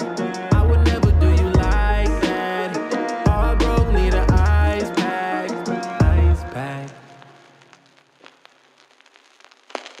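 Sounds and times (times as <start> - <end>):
vinyl crackle and pops: 6.4 - 10.0.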